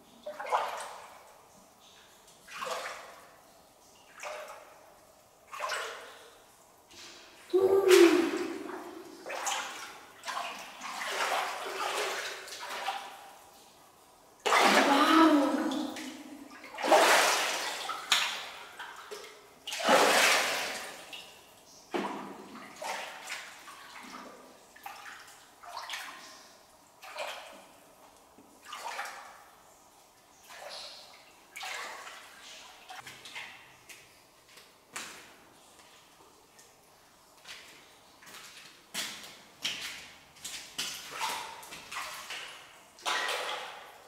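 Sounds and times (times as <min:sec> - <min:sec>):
feet wading in water: 0:02.4 - 0:03.3, 0:07.5 - 0:13.7, 0:14.4 - 0:21.4, 0:28.6 - 0:29.3, 0:30.4 - 0:33.5, 0:37.4 - 0:44.0
shallow water splashing: 0:07.0 - 0:13.7, 0:14.5 - 0:21.4.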